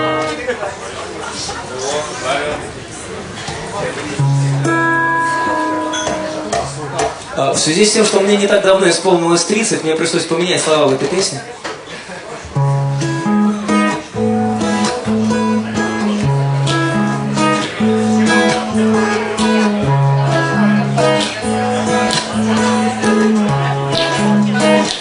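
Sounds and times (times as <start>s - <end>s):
acoustic guitar strumming: 0.0s - 0.6s, 4.1s - 10.3s, 12.4s - 25.0s.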